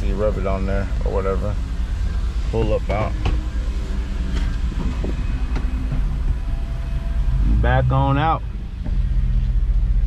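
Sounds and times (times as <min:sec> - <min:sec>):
pickup engine low rumble: 0:00.0 - 0:10.0.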